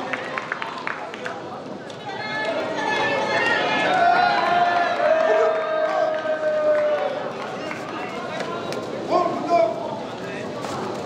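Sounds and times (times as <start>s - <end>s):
crowd chatter: 0.0s - 11.0s
spectators shouting: 2.1s - 7.4s.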